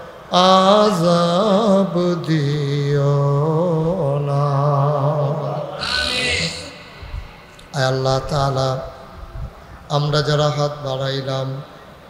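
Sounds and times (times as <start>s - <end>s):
man chanting into a microphone: 0.3s - 9.1s, 9.9s - 11.7s.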